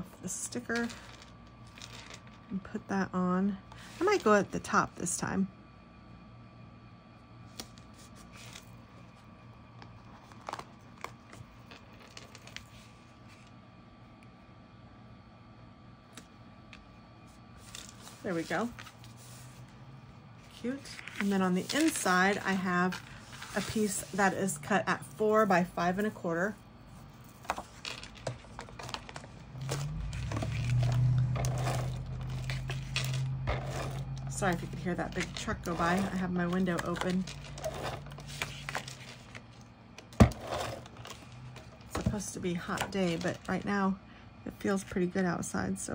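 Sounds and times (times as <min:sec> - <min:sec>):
steady low hum: 0:00.0 - 0:45.9
stickers peeling and rustling: 0:27.2 - 0:42.0
truck engine rumble: 0:29.3 - 0:39.0.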